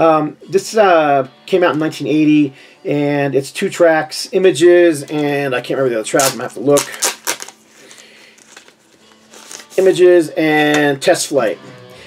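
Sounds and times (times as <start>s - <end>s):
crinkly sleeve rustles: 6.1s - 10.0s
soft handling noise: 7.8s - 10.0s.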